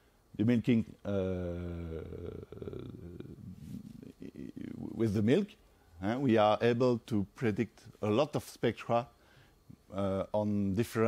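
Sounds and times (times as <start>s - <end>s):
man's creaky hesitation sounds: 1.0s - 5.3s
breathing: 9.2s - 9.8s.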